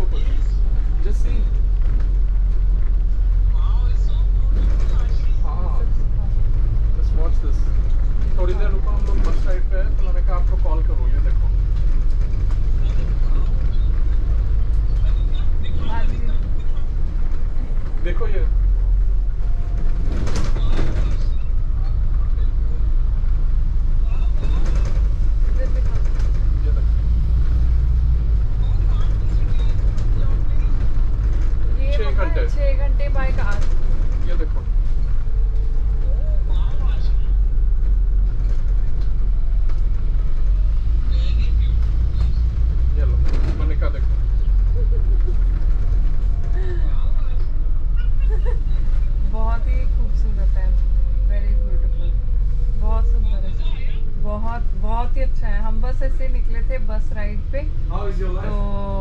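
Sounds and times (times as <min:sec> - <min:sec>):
passengers' voices: 0:00.0 - 0:27.0, 0:28.3 - 0:59.0
bus engine rumble: 0:00.0 - 0:59.0.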